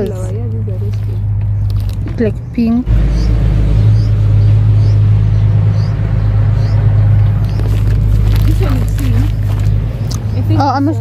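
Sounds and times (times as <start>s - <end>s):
steady low rumble: 0.0s - 11.0s
small bird chirping: 0.8s - 11.0s.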